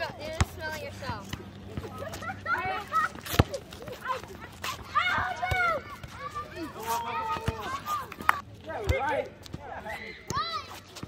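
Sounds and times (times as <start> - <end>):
distant shouts of players: 9.0 - 10.8.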